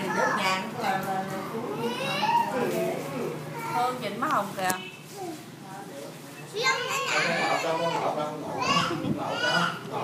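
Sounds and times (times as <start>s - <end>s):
young children calling and chattering: 0.0s - 10.0s.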